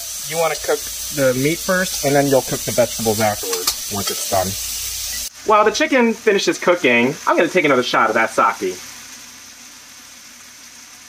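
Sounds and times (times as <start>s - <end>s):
chicken sizzling in oil: 0.0s - 11.0s.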